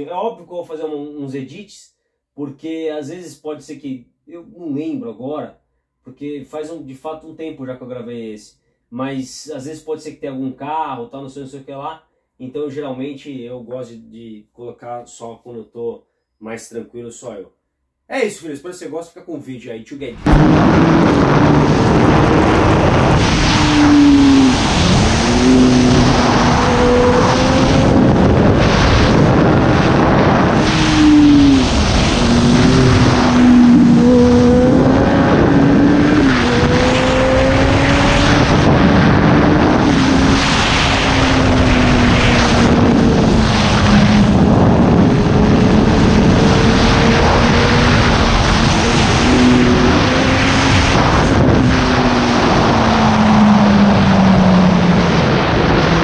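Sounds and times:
wind noise: 0:20.1 - 0:56.0
motorcycle engine revving: 0:20.2 - 0:56.0.

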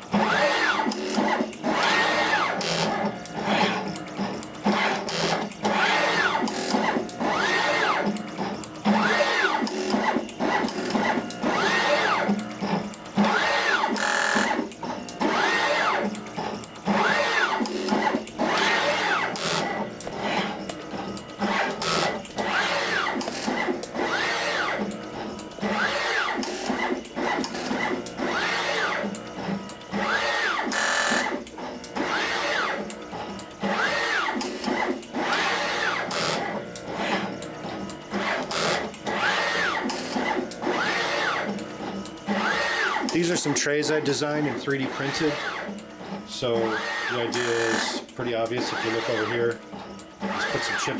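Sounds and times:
gantry motors whining: 0:00.0 - 0:50.9
rapid sharp mechanical clicks: 0:00.0 - 0:50.9.

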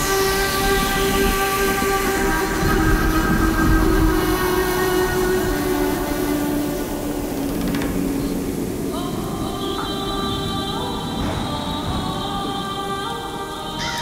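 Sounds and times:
long held electronic tones: 0:00.0 - 0:11.2
rushing wash of noise: 0:00.0 - 0:14.0.

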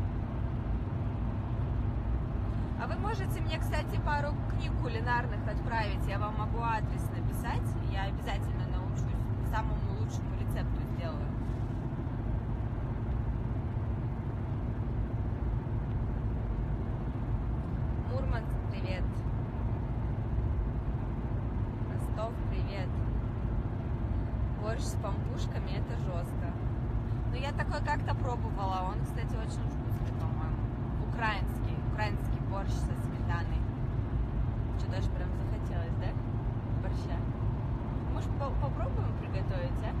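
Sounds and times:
car cabin rumble: 0:00.0 - 0:40.0
woman speaking: 0:02.8 - 0:11.3, 0:18.1 - 0:19.2, 0:21.9 - 0:23.0, 0:24.6 - 0:26.6, 0:27.3 - 0:33.7, 0:34.8 - 0:36.2, 0:36.8 - 0:37.3, 0:38.1 - 0:40.0.

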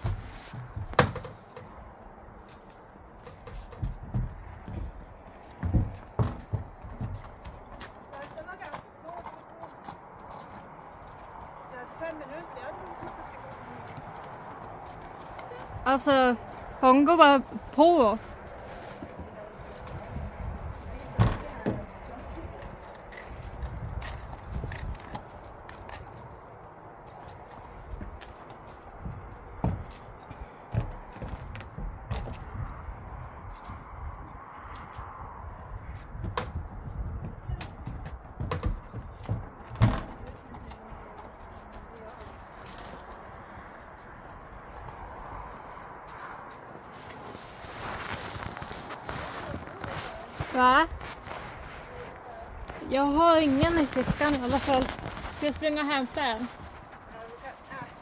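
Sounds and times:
hooves knocking on ramp: 0:00.0 - 0:16.8, 0:27.0 - 0:35.2, 0:35.8 - 0:47.3.

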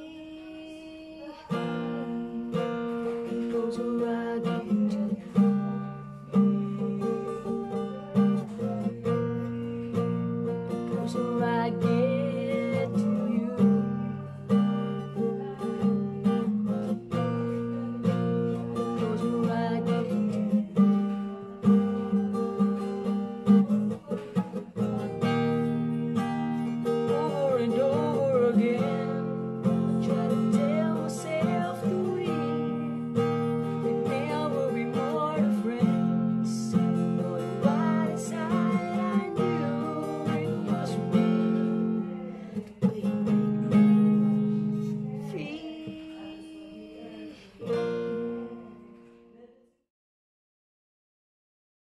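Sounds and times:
man singing: 0:00.0 - 0:48.8
acoustic guitar chords: 0:00.0 - 0:49.5.

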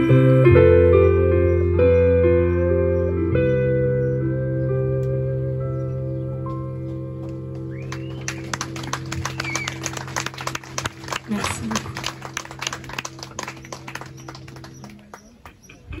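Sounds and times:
audience applauding: 0:07.7 - 0:15.9.

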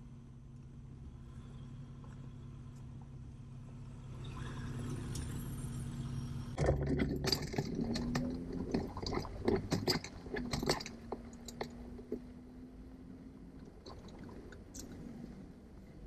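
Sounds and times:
vehicle engine humming: 0:00.0 - 0:16.0
sharp clicks and rattles: 0:06.5 - 0:12.5, 0:13.6 - 0:15.0.

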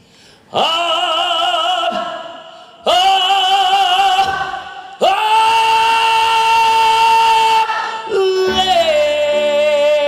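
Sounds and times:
man singing long high note: 0:00.5 - 0:10.0.

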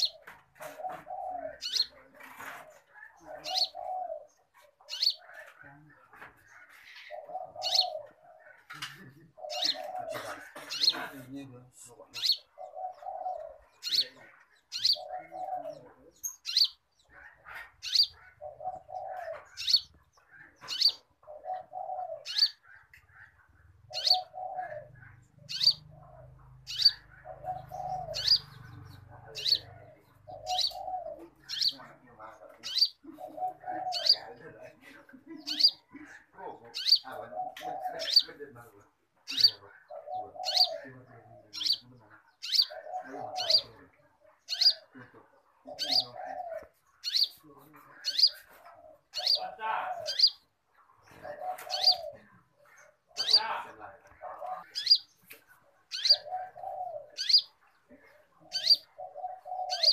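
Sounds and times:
songbird high chirps: 0:04.9 - 0:05.3, 0:13.8 - 0:15.0, 0:16.1 - 0:17.2, 0:17.8 - 0:18.4, 0:19.5 - 0:23.0, 0:23.6 - 0:24.4, 0:25.1 - 0:31.8, 0:32.6 - 0:34.2, 0:35.4 - 0:35.9, 0:36.7 - 0:37.1, 0:41.5 - 0:41.8, 0:42.4 - 0:42.7, 0:44.4 - 0:44.8, 0:45.8 - 0:47.4, 0:50.1 - 0:50.5, 0:54.6 - 0:55.3, 0:55.9 - 0:56.2, 0:57.2 - 0:57.9, 0:58.5 - 0:58.9, 0:59.7 - 0:59.9.

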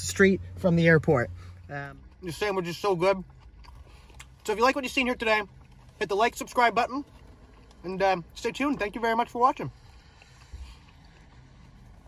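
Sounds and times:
chewing sandwich: 0:01.4 - 0:12.0.

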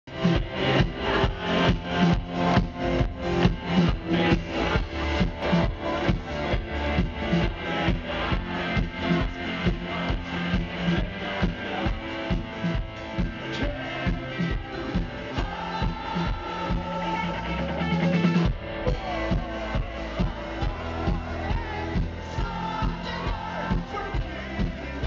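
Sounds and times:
bass guitar: 0:00.0 - 0:25.0
drum kit fast beat: 0:00.1 - 0:25.0.

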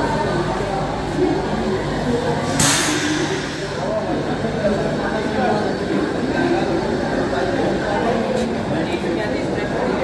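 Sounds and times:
passengers' voices: 0:00.0 - 0:10.0
train and station machinery din: 0:00.0 - 0:10.0.

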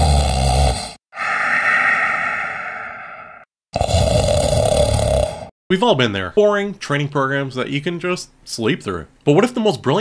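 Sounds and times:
person snoring: 0:00.0 - 0:05.5
breathy out-breath: 0:00.7 - 0:04.3.

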